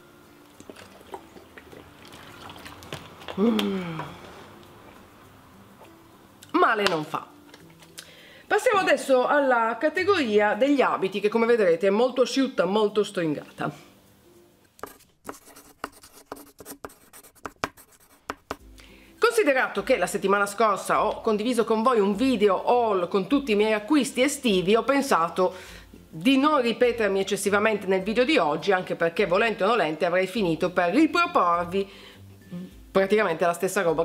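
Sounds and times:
water sloshing in bottle: 0.6s - 4.3s
chalk scratching on blackboard: 14.8s - 18.6s.

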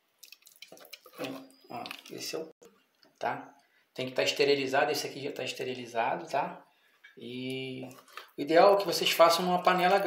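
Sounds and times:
spoon stirring thick jam: 0.2s - 2.4s.

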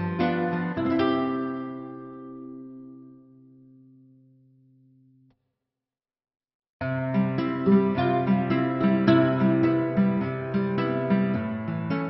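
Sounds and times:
soft plucked-string music: 0.0s - 4.2s, 6.8s - 12.0s.

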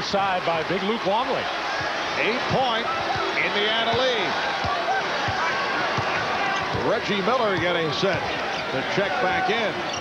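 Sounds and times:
arena crowd noise: 0.0s - 10.0s.

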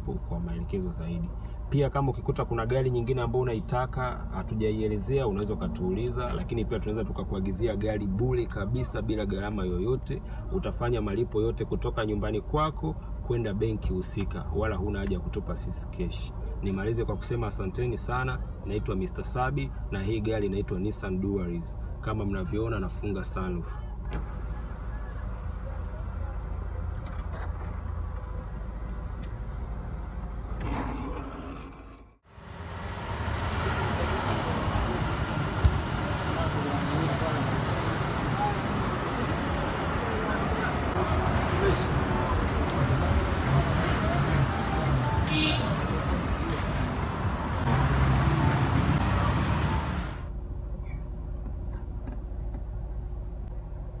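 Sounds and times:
street traffic noise: 0.0s - 54.0s.

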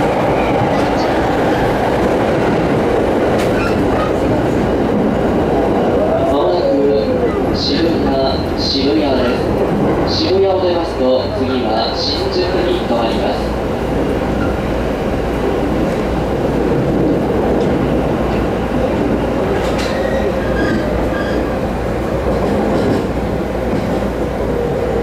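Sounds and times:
rail clicks: 0.0s - 25.0s
train wheels rumbling on rail: 0.0s - 25.0s.

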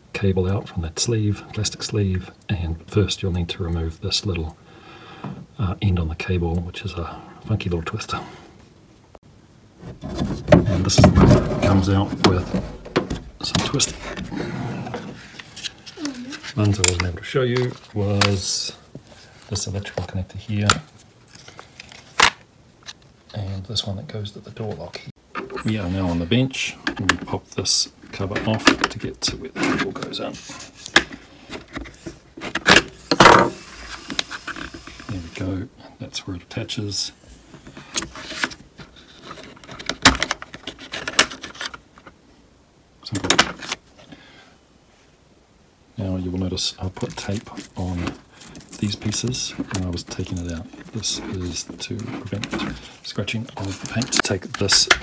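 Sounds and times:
plastic scraping: 9.8s - 23.0s, 37.5s - 42.2s, 46.8s - 55.0s
person murmuring: 15.9s - 16.8s.

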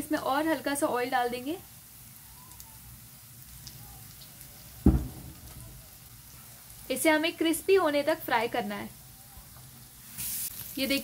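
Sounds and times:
fish sizzling in oil: 0.0s - 11.0s
low thump: 4.8s - 5.7s.

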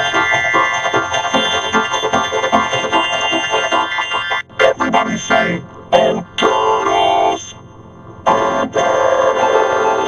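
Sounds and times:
pitch-shifted cartoon music: 0.0s - 7.6s, 8.2s - 10.0s.

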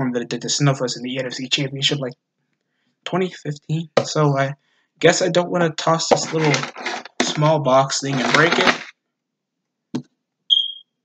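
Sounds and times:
high-pitched electronic beep: 10.5s - 10.8s.

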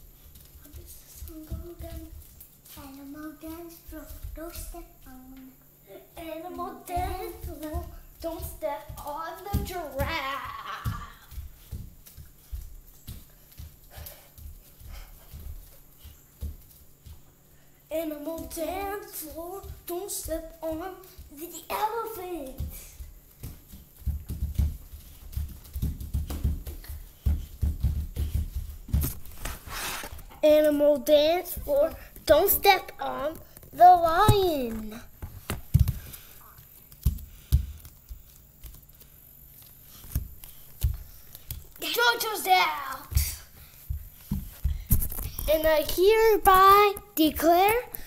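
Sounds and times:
children stomping on floor: 0.0s - 5.0s, 6.2s - 17.4s, 18.1s - 39.1s, 40.0s - 42.2s, 42.8s - 46.6s.

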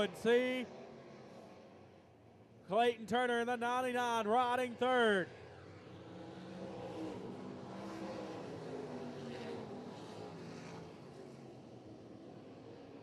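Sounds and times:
race car engines racing: 0.0s - 13.0s.

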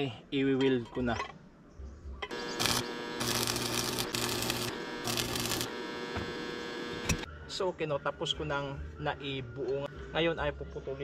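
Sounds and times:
crackling welding arc: 2.3s - 7.3s
welding machine electrical hum: 2.3s - 7.3s.

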